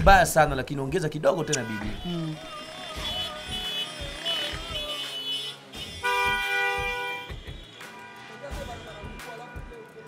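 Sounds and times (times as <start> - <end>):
horn toot: 1.4 - 9.7
background music with drum beat: 2.9 - 10.0.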